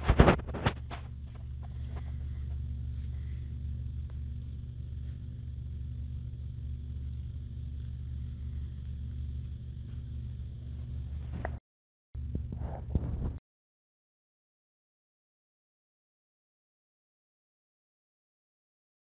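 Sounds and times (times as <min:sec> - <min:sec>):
steady low hum: 0:00.0 - 0:11.6, 0:12.2 - 0:13.4.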